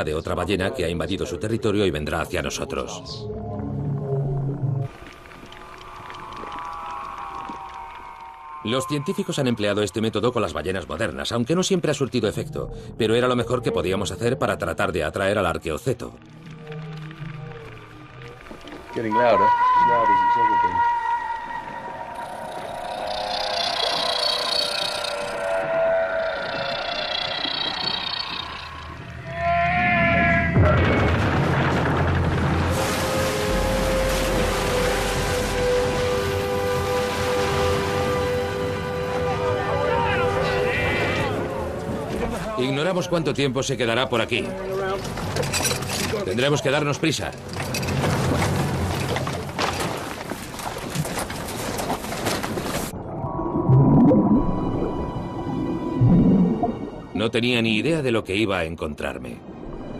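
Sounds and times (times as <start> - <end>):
whale call played underwater: 3.3 - 9.9, 16.4 - 31.0, 32.8 - 42.2.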